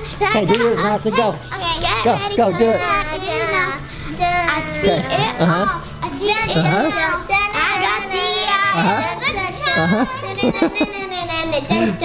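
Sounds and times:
girls vocalizing playfully: 0:01.4 - 0:12.0.

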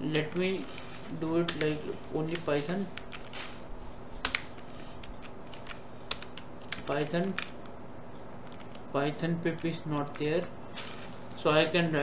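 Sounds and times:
computer keyboard keystrokes: 0:01.4 - 0:03.4, 0:04.2 - 0:07.8, 0:08.4 - 0:08.8.

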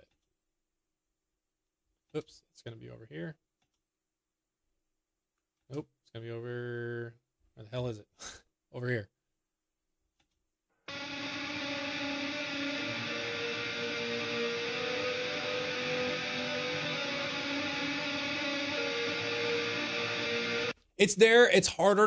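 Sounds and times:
ambient electric guitar: 0:10.9 - 0:20.7.

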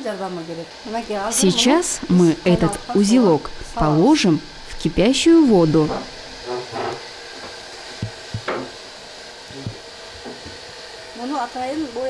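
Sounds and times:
water boiling in a pot: 0:00.0 - 0:12.0
light knocks in a pot: 0:08.0 - 0:08.8.

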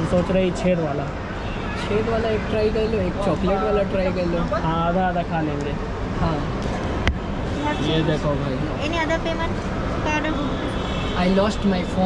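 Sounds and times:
voices talking: 0:00.0 - 0:06.7, 0:07.5 - 0:12.0.

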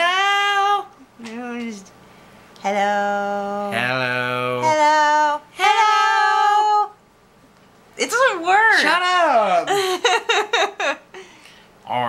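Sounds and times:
man singing low note: 0:03.8 - 0:04.8.

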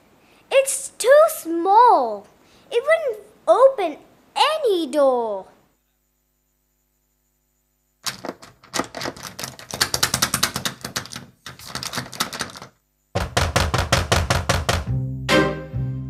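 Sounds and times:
clatter of sharp knocks: 0:08.0 - 0:14.9
evenly spaced sharp knocks: 0:09.5 - 0:15.0.

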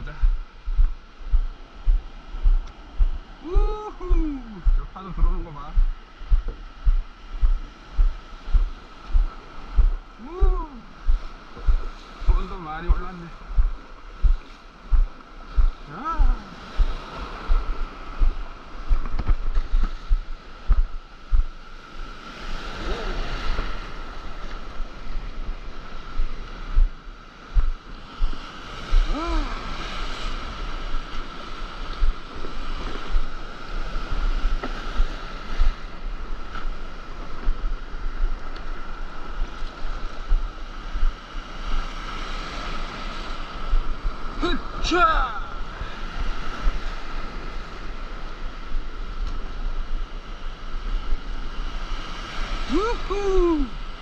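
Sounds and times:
wind buffeting microphone: 0:00.0 - 0:44.9, 0:45.5 - 0:54.0
person whooping: 0:03.4 - 0:04.7, 0:10.2 - 0:10.9, 0:29.1 - 0:29.7, 0:52.7 - 0:53.8
whitewater rushing: 0:03.4 - 0:06.5, 0:07.4 - 0:13.6, 0:15.4 - 0:18.7, 0:28.6 - 0:33.2, 0:52.6 - 0:53.8.

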